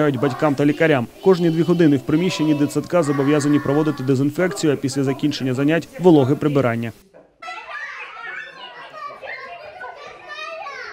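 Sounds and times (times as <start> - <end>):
children chattering and calling out: 0.0 - 10.9.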